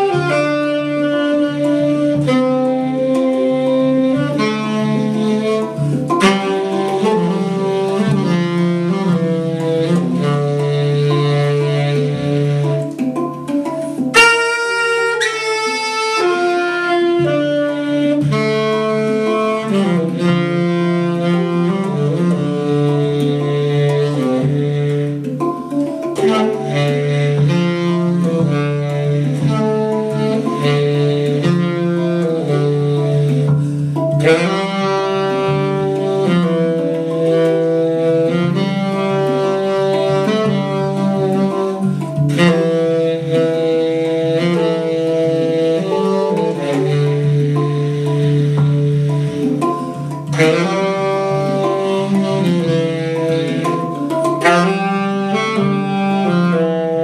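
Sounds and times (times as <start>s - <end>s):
hang drum ringing notes: 0.0s - 57.0s
tenor saxophone melody: 0.0s - 57.0s.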